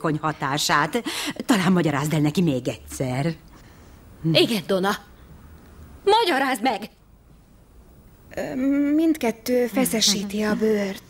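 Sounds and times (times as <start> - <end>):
woman speaking: 0.0 - 3.4, 4.2 - 5.1, 8.3 - 11.0.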